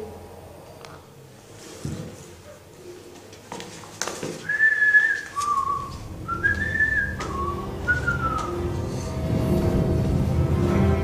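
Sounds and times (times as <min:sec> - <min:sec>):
person whistling a slow tune: 0:04.4 - 0:08.8.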